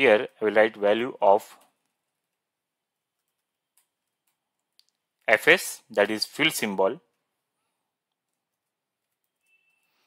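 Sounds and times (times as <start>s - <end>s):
faint keyboard clicks: 3.1s - 5.2s, 8.0s - 9.5s.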